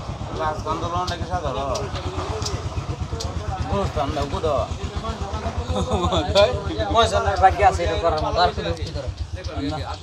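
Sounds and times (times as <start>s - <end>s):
engine running with low pulse: 0.0s - 10.0s
men talking: 0.0s - 10.0s
sharp clicks: 1.0s - 3.6s.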